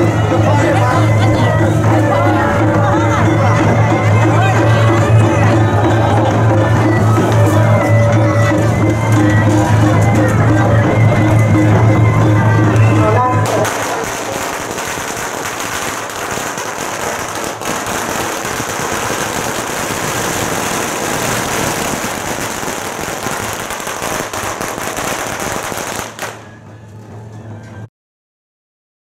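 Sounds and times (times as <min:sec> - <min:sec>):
string of firecrackers crackling: 0:00.0 - 0:27.3.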